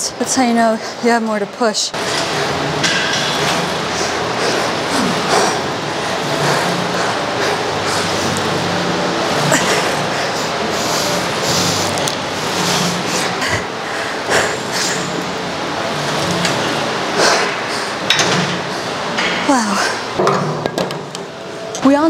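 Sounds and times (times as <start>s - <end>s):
hard breathing and exhales: 2.0s - 15.3s, 17.1s - 20.2s.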